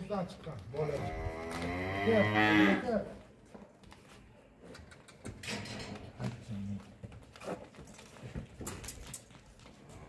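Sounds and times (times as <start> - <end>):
cattle mooing: 1.0 - 3.0.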